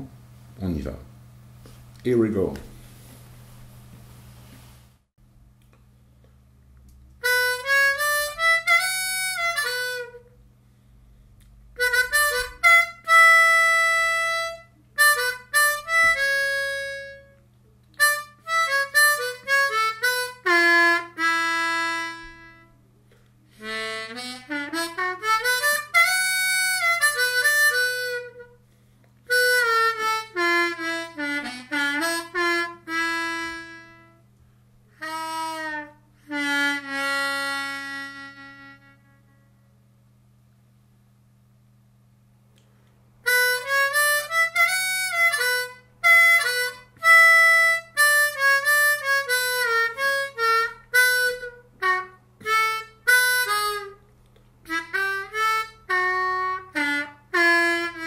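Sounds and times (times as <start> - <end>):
harmonica playing slowly: 7.2 - 10.5, 11.6 - 39.8, 43.2 - 58.0.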